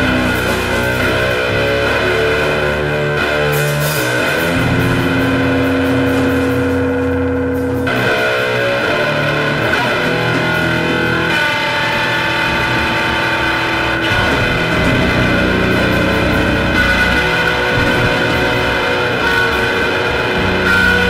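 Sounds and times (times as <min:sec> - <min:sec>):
doom metal electric guitars: 0:00.0 - 0:21.0.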